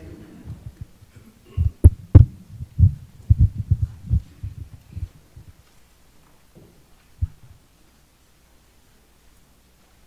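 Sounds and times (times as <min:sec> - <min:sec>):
microphone handling thumps: 0:01.6 - 0:05.6, 0:06.6 - 0:07.6.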